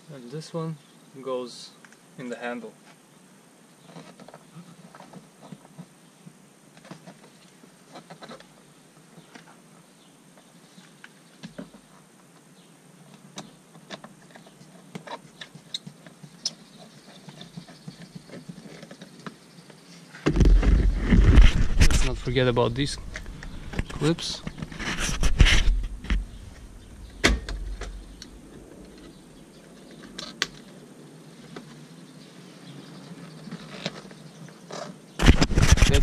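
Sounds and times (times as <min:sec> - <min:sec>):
sleeve rubbing microphone: 0:20.3 - 0:29.3, 0:35.2 - 0:36.0.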